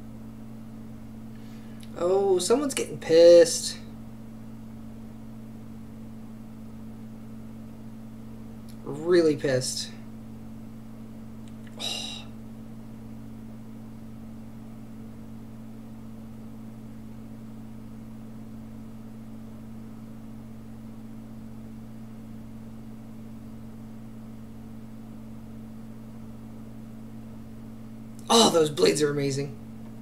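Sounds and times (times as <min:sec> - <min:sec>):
low background hum: 0:00.0 - 0:30.0.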